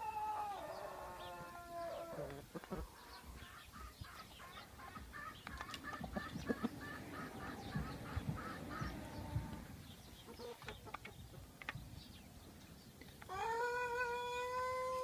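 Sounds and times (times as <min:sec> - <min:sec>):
chicken clucking: 0:00.2 - 0:11.8.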